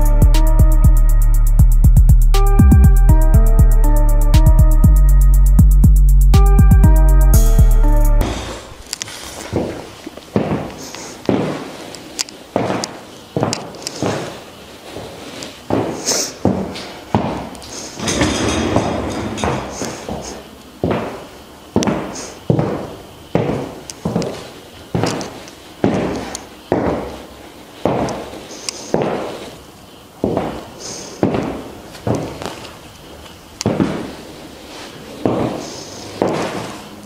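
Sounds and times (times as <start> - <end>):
high heel clicks on hard floor: 8.2 - 14.4, 15.7 - 21.2, 21.8 - 24.4, 25.0 - 27.2, 27.8 - 28.2, 30.2 - 30.6, 31.2 - 32.7, 33.6 - 34.1, 35.2 - 36.8
boots scuffing: 8.2 - 29.6, 30.2 - 37.0.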